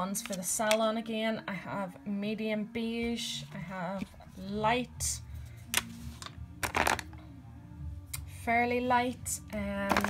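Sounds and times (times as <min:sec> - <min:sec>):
plastic jars rattling: 0:06.6 - 0:07.1.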